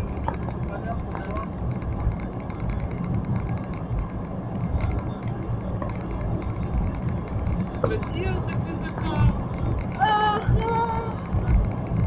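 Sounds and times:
car road and engine noise: 0:00.0 - 0:12.0.

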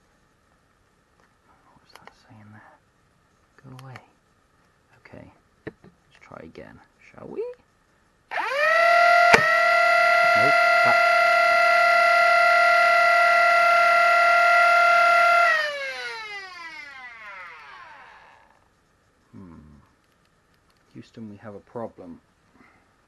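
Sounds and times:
toy blaster motors whining: 0:08.3 - 0:18.6
dart firing snap: 0:09.3 - 0:09.5.

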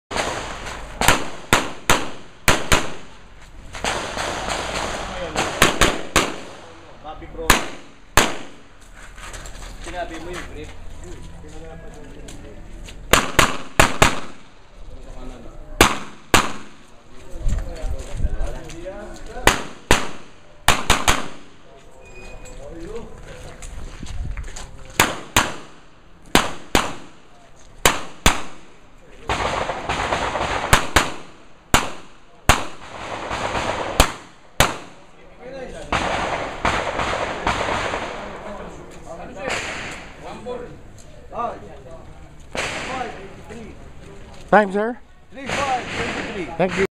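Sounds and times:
pistol shots: 0:00.1 - 0:03.2, 0:03.8 - 0:06.8, 0:07.4 - 0:08.7, 0:13.1 - 0:14.6, 0:15.8 - 0:16.8, 0:19.4 - 0:21.6, 0:25.0 - 0:35.0, 0:35.8 - 0:38.4, 0:42.6 - 0:43.2, 0:45.4 - 0:46.9.

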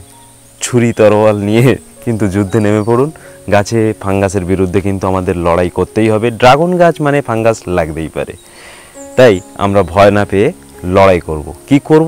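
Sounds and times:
man speaking close to microphone: 0:00.6 - 0:08.4, 0:09.2 - 0:12.0.

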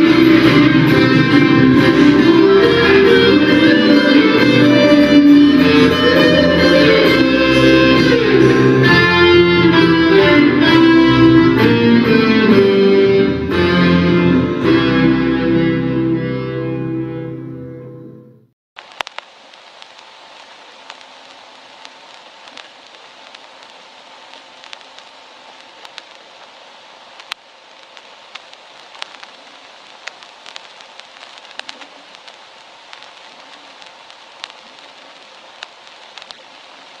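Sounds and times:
record surface hiss: 0:00.0 - 0:18.2, 0:18.8 - 0:37.0
record clicks and pops: 0:18.8 - 0:37.0.

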